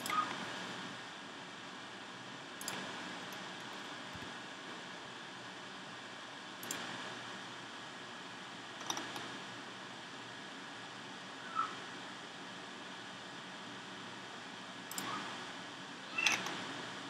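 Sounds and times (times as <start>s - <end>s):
computer mouse clicking: 0.0s - 0.5s, 2.6s - 4.3s, 6.6s - 6.9s, 8.8s - 9.3s, 14.9s - 15.3s, 16.1s - 16.6s.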